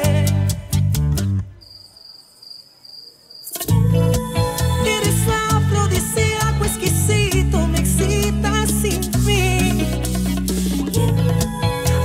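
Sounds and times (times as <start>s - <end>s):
bachata song: 0.0s - 1.6s, 3.5s - 12.0s.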